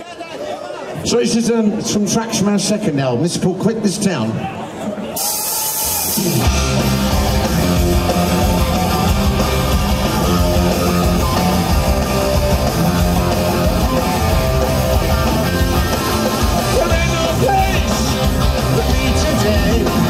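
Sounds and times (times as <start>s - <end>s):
drums: 5.1s - 20.0s
distorted electric guitars: 5.2s - 20.0s
bass guitar: 5.8s - 20.0s.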